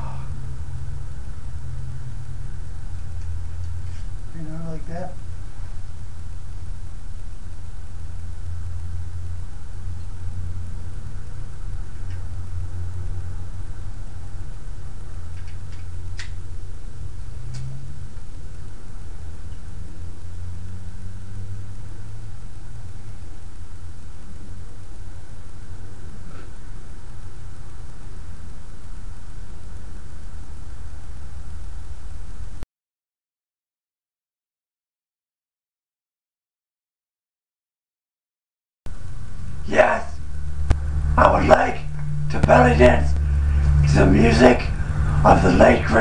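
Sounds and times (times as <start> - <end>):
steady low rumble: 0.0 - 32.6, 38.9 - 46.0.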